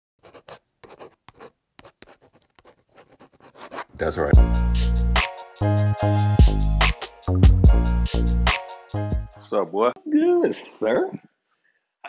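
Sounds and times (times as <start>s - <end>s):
pen scratching on paper: 0.2s - 4.4s.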